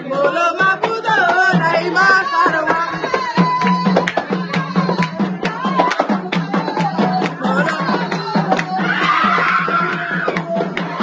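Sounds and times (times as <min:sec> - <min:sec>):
dance drumming: 0:00.0 - 0:11.0
woman ululating: 0:08.7 - 0:10.4.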